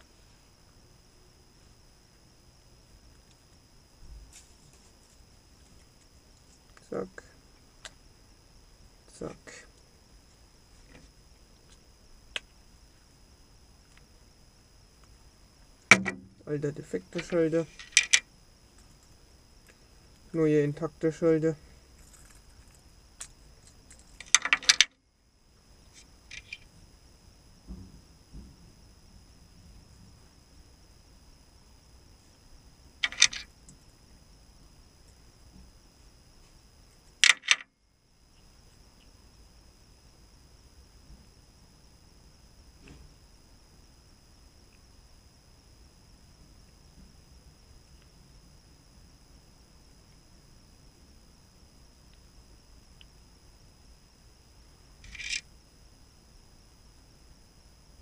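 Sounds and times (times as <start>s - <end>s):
quiet fiddling noises: 2.8s - 8.0s, 22.0s - 24.9s
small parts clicking and rattling: 17.1s - 19.8s, 22.0s - 25.0s, 25.9s - 26.7s, 33.0s - 33.9s, 37.2s - 37.7s, 55.0s - 55.5s.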